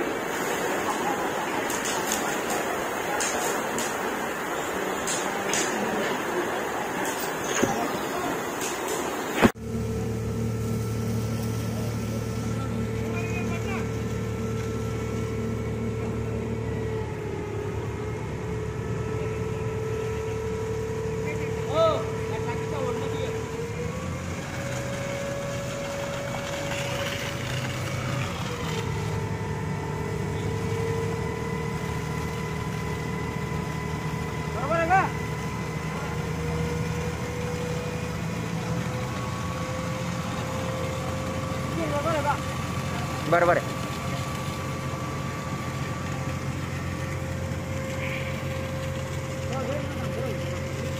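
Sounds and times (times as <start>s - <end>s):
fire engine pump engine running: 0.0s - 50.9s.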